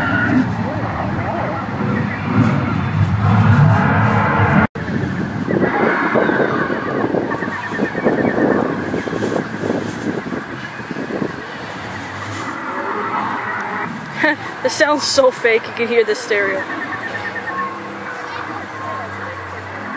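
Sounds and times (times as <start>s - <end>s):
dinosaur roars through loudspeaker: 0.0s - 4.6s, 5.5s - 7.5s, 11.6s - 14.1s.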